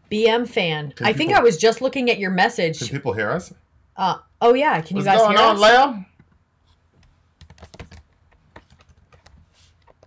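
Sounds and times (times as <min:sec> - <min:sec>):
computer keyboard typing: 0:07.4 - 0:09.4.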